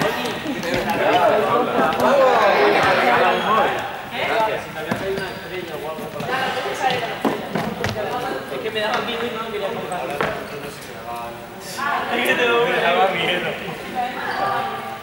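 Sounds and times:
young people chattering: 0.0s - 15.0s.

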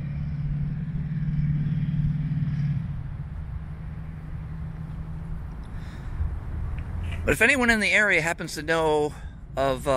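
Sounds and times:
road traffic rumble: 0.0s - 9.9s
vehicle engine humming: 0.0s - 9.9s.

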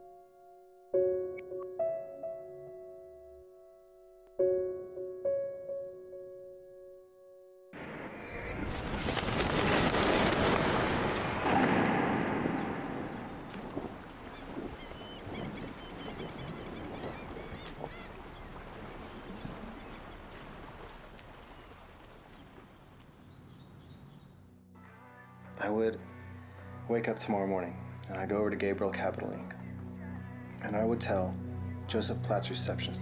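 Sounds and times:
birds chirping: 11.6s - 24.5s.

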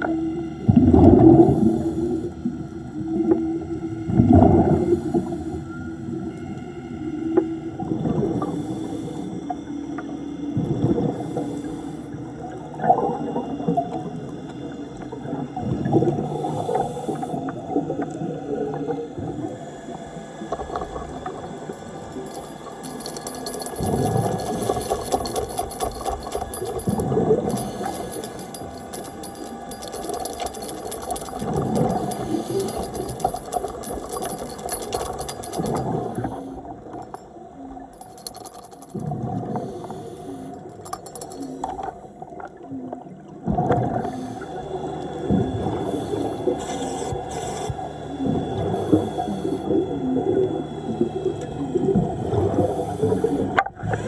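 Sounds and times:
scuba bubbles rushing and gurgling: 0.0s - 5.6s, 7.6s - 38.0s, 38.9s - 54.0s
low hum: 0.0s - 53.8s
faint steady tones: 0.0s - 54.0s.

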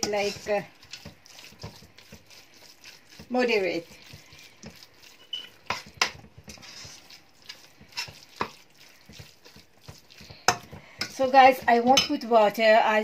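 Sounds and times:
spatula scraping a metal wok: 0.0s - 12.2s.

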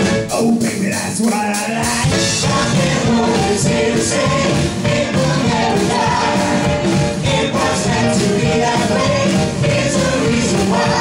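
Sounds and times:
live rock and roll song: 0.0s - 11.0s.

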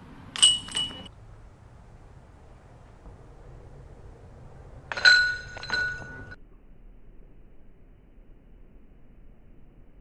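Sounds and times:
golf disc hitting metal chains: 0.3s - 1.1s, 4.9s - 6.4s
chains jangling: 0.4s - 1.1s, 4.9s - 6.4s.

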